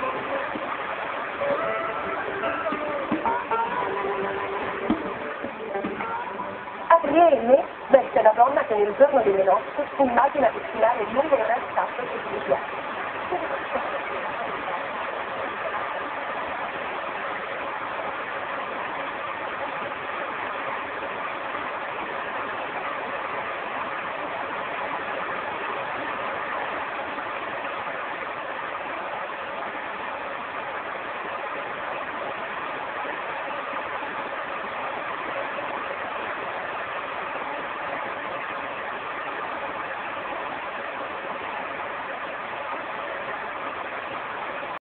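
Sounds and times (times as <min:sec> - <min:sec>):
tv static hiss: 0:00.0 - 0:44.8.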